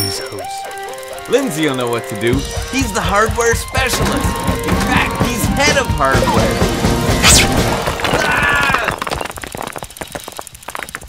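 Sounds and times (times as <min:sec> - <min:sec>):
bicycle ticking and rattling: 0:00.0 - 0:07.0, 0:07.6 - 0:11.0.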